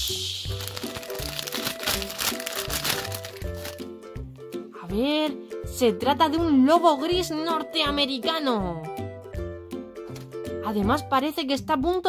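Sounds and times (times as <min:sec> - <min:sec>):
background music: 0:00.0 - 0:12.0
foil wrapper crinkling: 0:00.2 - 0:03.9.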